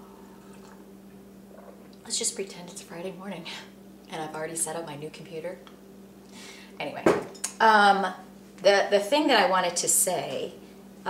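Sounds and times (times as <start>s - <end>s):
steady low hum: 0.0s - 11.0s
person sipping and swallowing: 0.2s - 2.0s.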